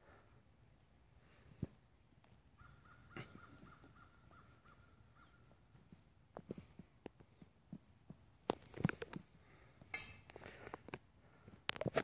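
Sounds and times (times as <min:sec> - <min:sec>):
faint rapid bird calls: 0:02.5 - 0:05.8.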